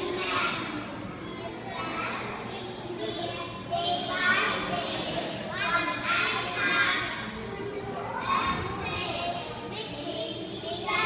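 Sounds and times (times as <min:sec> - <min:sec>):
boy speaking into a microphone: 0:00.0 - 0:11.0
children reciting a prayer: 0:00.0 - 0:11.0.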